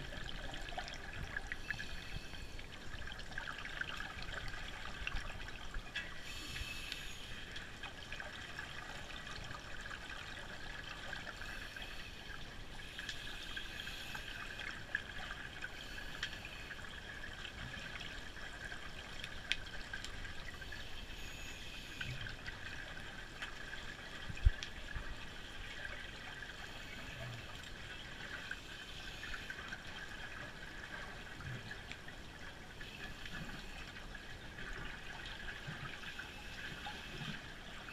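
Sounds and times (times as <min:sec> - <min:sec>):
underwater crackling hiss: 0:06.2 - 0:07.6, 0:11.3 - 0:14.7.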